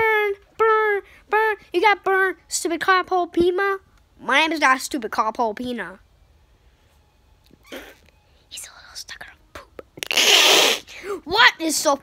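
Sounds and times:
child whispering vocal noises: 0:07.6 - 0:11.4
hissing burst of breath: 0:10.0 - 0:11.2.

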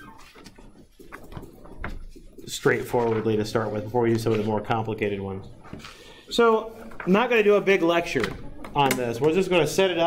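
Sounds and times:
faint clicks and rustles: 0:00.0 - 0:07.4.

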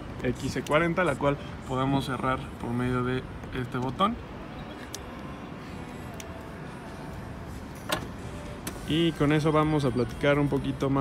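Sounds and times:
tailgate latching clunk: 0:07.8 - 0:08.1.

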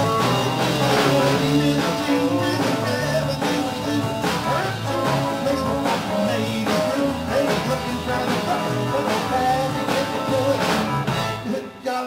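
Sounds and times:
drum kit beat: 0:00.0 - 0:11.8
bass guitar: 0:00.0 - 0:12.0
electric guitar: 0:00.0 - 0:12.0.

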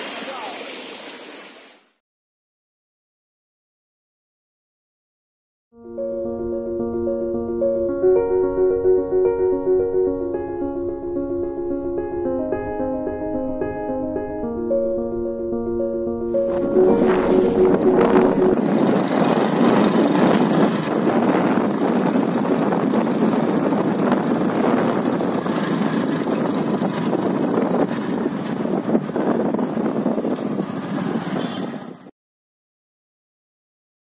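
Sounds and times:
vehicle engine: 0:16.4 - 0:32.1
wind rushing past vehicle: 0:16.4 - 0:32.1.

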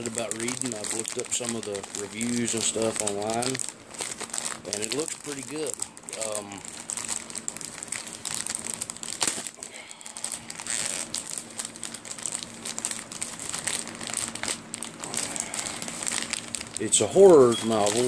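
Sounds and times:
faint low hum: 0:00.0 - 0:18.0
plastic wrapping crinkling: 0:00.0 - 0:18.0.

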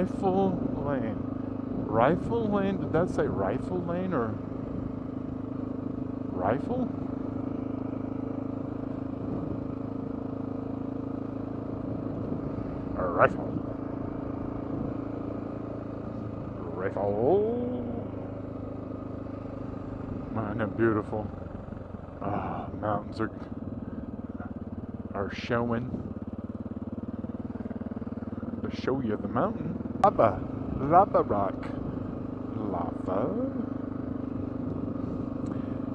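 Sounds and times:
motorcycle engine running: 0:00.0 - 0:35.9.

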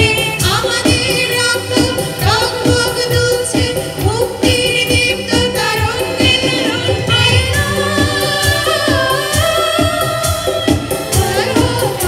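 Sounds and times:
band with steady beat: 0:00.0 - 0:12.0
female singers singing together: 0:00.0 - 0:12.0.

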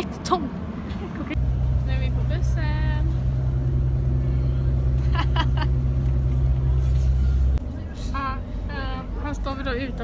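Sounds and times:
bus engine and road drone: 0:00.0 - 0:10.0.

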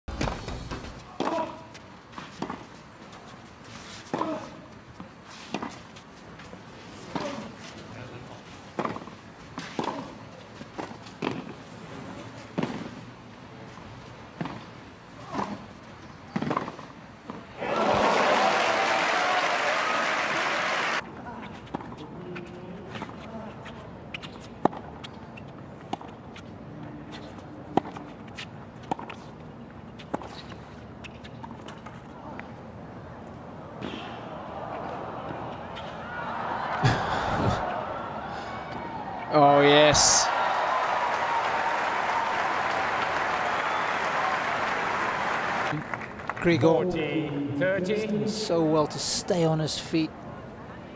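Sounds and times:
crowd applause: 0:17.6 - 0:21.0, 0:36.1 - 0:38.6, 0:39.9 - 0:46.5
low crowd murmur: 0:50.1 - 0:50.9.

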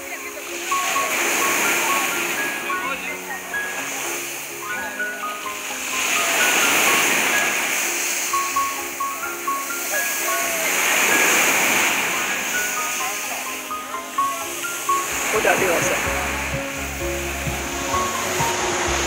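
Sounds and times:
sea surf breaking on shore: 0:00.0 - 0:19.0
slow background music: 0:00.0 - 0:19.0
voices: 0:00.0 - 0:19.0.

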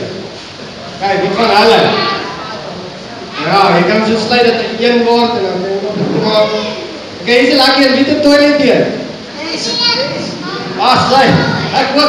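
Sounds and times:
adult speaking: 0:01.0 - 0:02.3, 0:03.4 - 0:12.0
children calling out: 0:01.4 - 0:04.0, 0:06.2 - 0:07.2, 0:09.2 - 0:12.0.

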